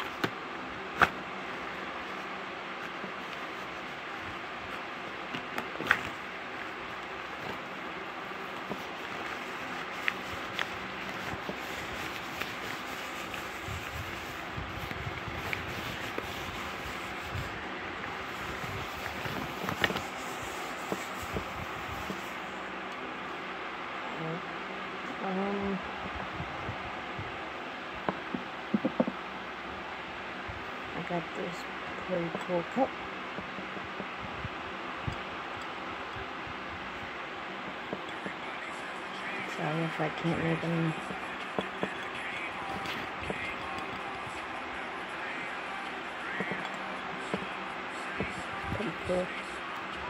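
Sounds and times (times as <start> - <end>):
background hiss and hum: 0.0 - 50.0
soft rustling of fabric: 1.0 - 22.8.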